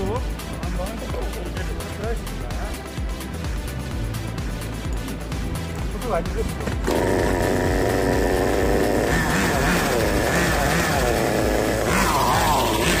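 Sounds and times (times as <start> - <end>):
small model engine revving: 6.8 - 13.0.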